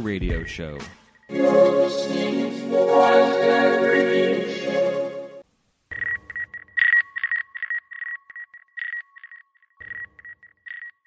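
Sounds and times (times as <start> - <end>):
intro music: 0.9 - 5.4
irregular electronic beeps: 5.9 - 11.0.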